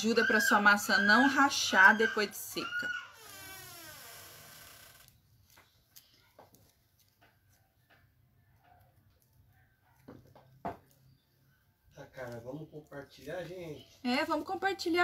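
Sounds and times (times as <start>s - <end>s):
faint handling noises: 5.1s - 11.2s.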